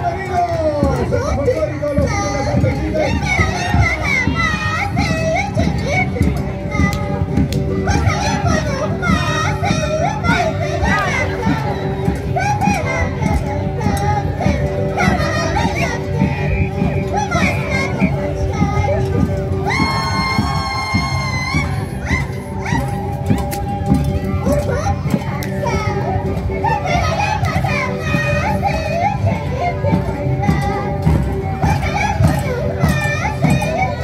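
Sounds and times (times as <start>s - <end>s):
band music with held melody: 0.0s - 34.0s
crowd voices: 0.0s - 34.0s
drum beats: 0.0s - 34.0s
high-pitched singing: 0.7s - 34.0s.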